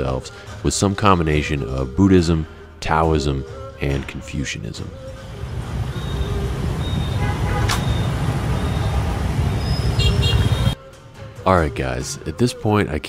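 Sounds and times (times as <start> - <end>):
motorbike and car engines: 5.1 - 10.8
high beep: 5.9 - 10.7.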